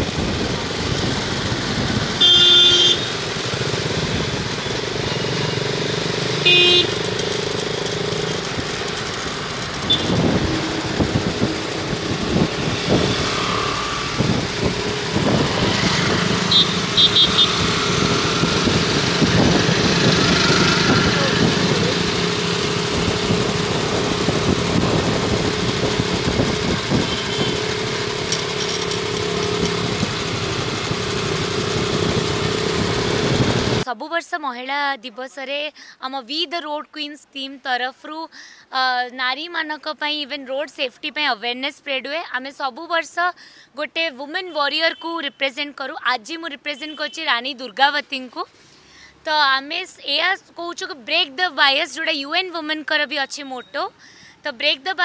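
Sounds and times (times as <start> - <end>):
motorcycle engines droning: 0.0 - 33.8
short horn beeps: 2.2 - 3.2, 6.4 - 7.1, 9.8 - 10.2, 16.5 - 17.7, 27.0 - 27.7
vehicle horn blasts: 2.2 - 3.2, 6.4 - 7.1, 9.8 - 10.4, 16.4 - 18.0, 26.9 - 27.8.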